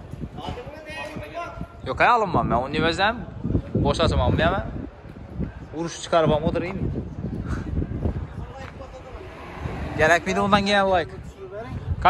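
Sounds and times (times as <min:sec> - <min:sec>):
men talking in background: 0:00.4 - 0:12.0
close speech: 0:08.4 - 0:11.8.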